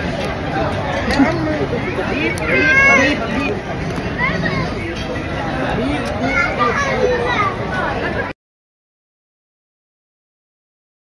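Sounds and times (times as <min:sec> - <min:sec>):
background babble of voices: 0:00.0 - 0:08.4
children calling and playing: 0:00.0 - 0:08.4.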